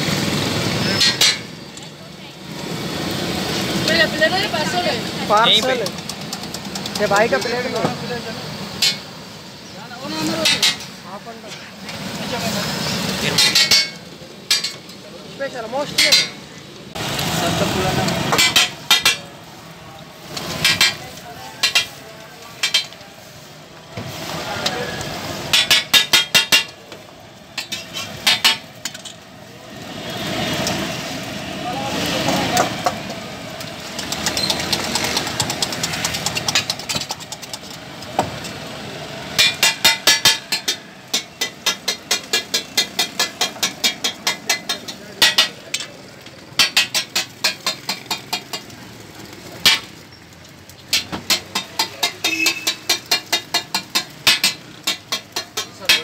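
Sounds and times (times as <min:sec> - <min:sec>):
traffic-like hum: 0:00.0 - 0:56.0
metal spatula clanking on griddle: 0:00.8 - 0:01.6, 0:08.7 - 0:09.1, 0:10.2 - 0:11.7, 0:13.2 - 0:15.0, 0:15.8 - 0:16.4, 0:18.0 - 0:19.3, 0:20.4 - 0:23.0, 0:25.5 - 0:26.8, 0:27.6 - 0:29.2, 0:34.0 - 0:37.8, 0:39.3 - 0:48.8, 0:49.6 - 0:50.0, 0:50.8 - 0:56.0.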